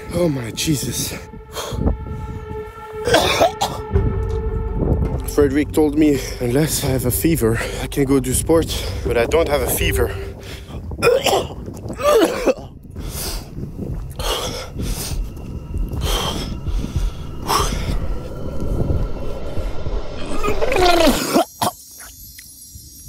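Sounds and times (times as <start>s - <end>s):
low rumble: 0.0s - 21.3s
man breathing hard: 1.3s - 3.0s, 12.8s - 20.2s
man coughing: 3.1s - 3.8s, 11.0s - 12.8s.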